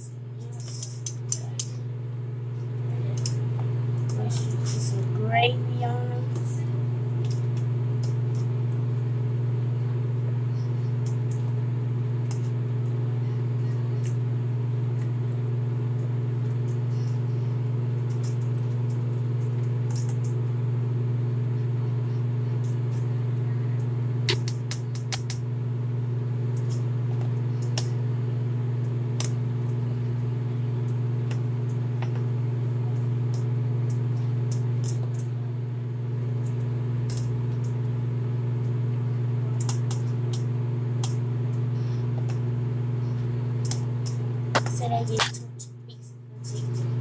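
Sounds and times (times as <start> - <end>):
kitchen appliance motor hum: 0.0 - 47.0.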